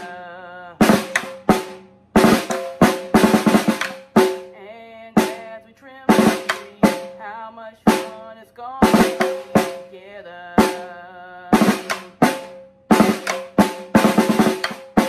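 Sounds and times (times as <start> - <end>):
snare drum played with sticks: 0.8 - 4.5, 5.2 - 5.5, 6.1 - 7.2, 7.9 - 8.2, 8.8 - 10.0, 10.6 - 15.0.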